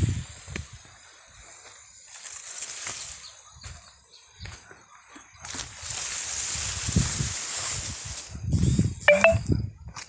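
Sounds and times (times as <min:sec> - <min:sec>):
wind and handling rumble: 0:06.4 - 0:10.0.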